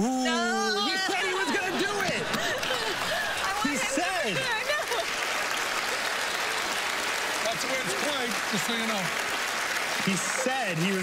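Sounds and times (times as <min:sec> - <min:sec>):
audience laughing: 0:00.9 - 0:05.3
audience applauding: 0:01.0 - 0:11.0.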